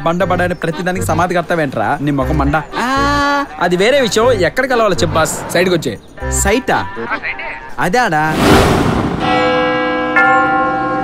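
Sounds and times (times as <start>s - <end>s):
church bell tolling: 9.2s - 11.0s.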